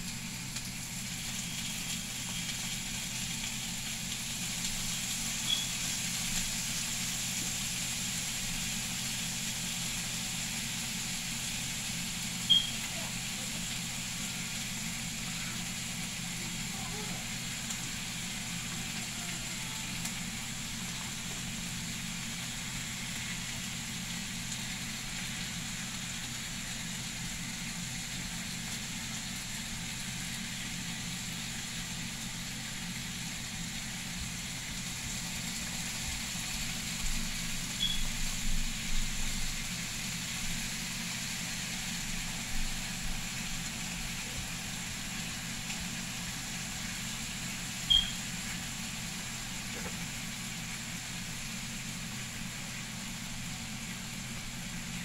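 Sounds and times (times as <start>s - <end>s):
bacon sizzling in a frying pan: 0.0s - 55.0s.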